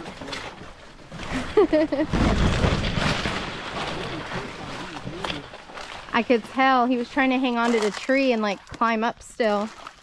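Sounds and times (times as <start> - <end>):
fronds rustling and scraping: 0.0 - 10.0.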